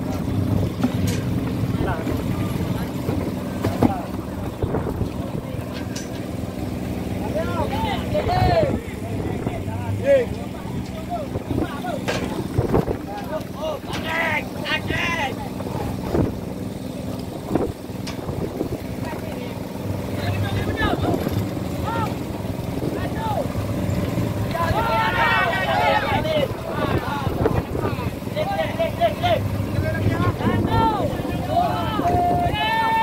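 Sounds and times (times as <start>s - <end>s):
boat engine humming: 0.0s - 33.0s
crew voices calling out: 1.1s - 33.0s.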